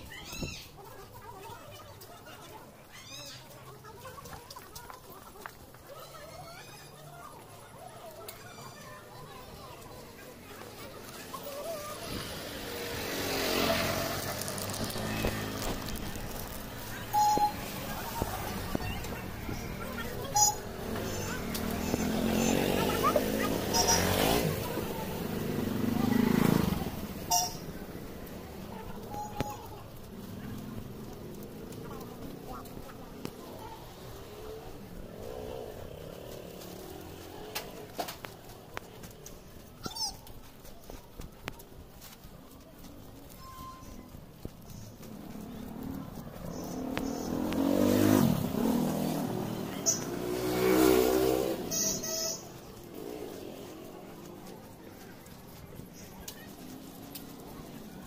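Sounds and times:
street noise: 0.0 - 58.0
auto-rickshaw engine running: 3.1 - 58.0.

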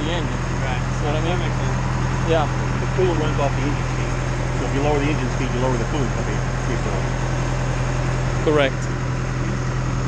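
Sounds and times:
pump engine running: 0.0 - 10.0.

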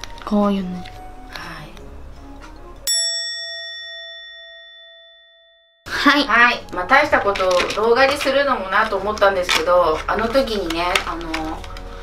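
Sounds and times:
bell-like ding: 2.9 - 5.9.

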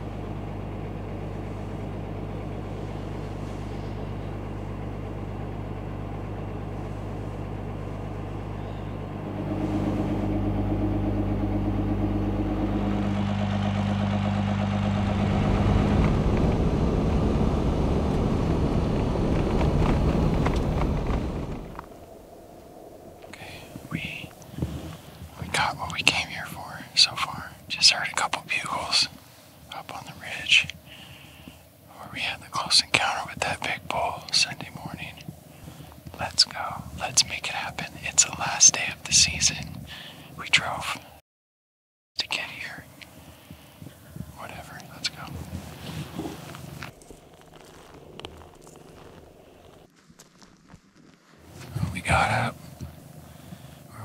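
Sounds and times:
truck engine droning inside cab: 0.0 - 40.8, 42.2 - 49.9, 51.4 - 54.0
man whispering: 23.3 - 30.8, 31.9 - 35.2, 36.1 - 41.2, 42.2 - 42.9, 44.3 - 46.5, 51.6 - 52.9.

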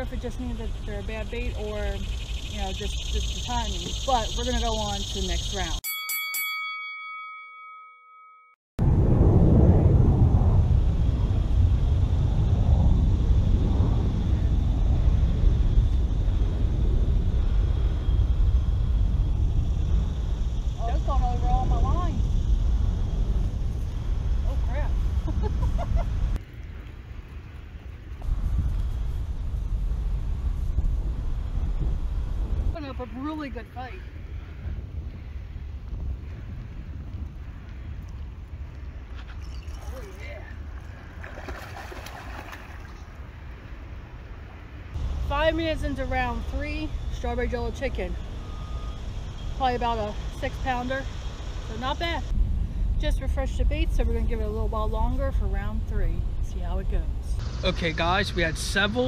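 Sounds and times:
wind rumble on microphone: 0.0 - 5.8, 8.8 - 59.0
brief chime: 5.8 - 8.6.

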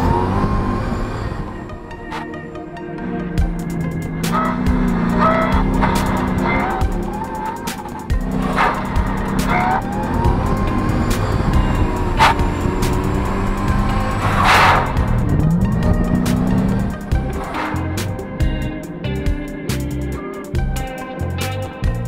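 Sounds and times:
tire squeals: 0.0 - 2.3, 2.9 - 18.6
gliding whine: 0.0 - 20.3
car engine running: 0.0 - 22.0
music: 0.0 - 22.0.

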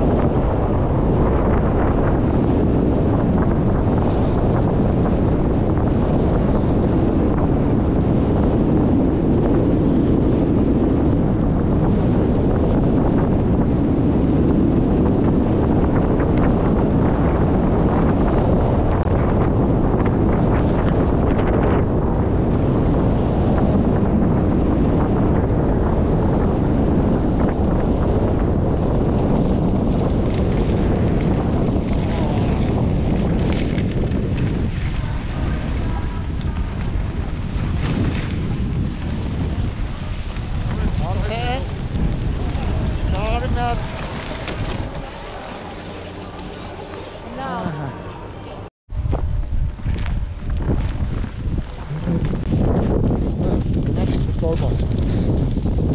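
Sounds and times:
wind buffeting microphone: 0.0 - 55.9.

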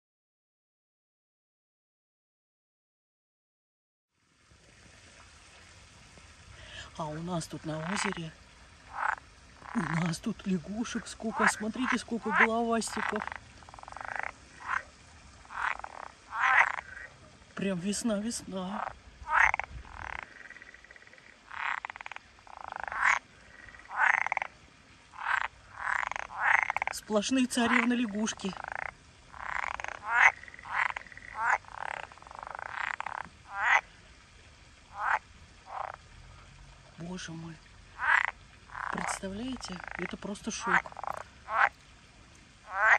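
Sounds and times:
frogs croaking: 6.6 - 42.9.

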